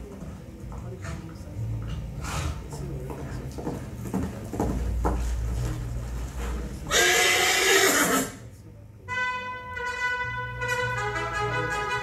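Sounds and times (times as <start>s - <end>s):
horse whinny over loudspeaker: 6.9s - 8.4s.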